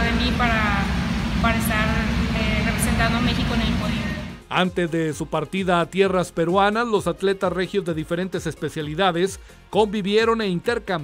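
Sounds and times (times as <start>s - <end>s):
loud low rumble: 0.0s - 4.4s
woman speaking: 0.0s - 4.4s.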